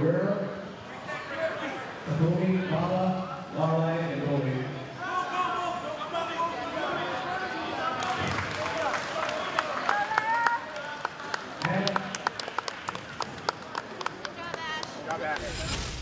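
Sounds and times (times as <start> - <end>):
spectators clapping: 7.9 - 15.5
loud whoosh: 15.2 - 16.0.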